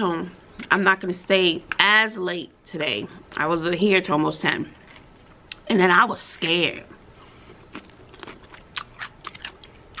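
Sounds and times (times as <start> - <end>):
person chewing crunchy food: 7.3 - 10.0.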